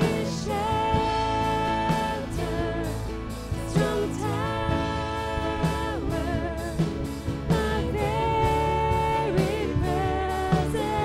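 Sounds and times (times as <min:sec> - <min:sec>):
guitars: 0:00.0 - 0:11.0
keyboard: 0:00.0 - 0:11.0
steady drum beat: 0:00.0 - 0:11.0
woman singing: 0:00.0 - 0:11.0.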